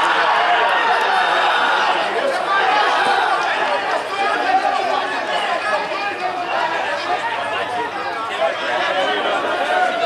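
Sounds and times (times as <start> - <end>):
many voices talking and shouting: 0.0 - 10.0.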